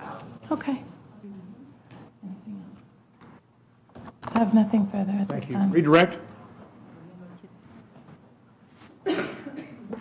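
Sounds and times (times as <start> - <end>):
person coughing: 9.1 - 9.9.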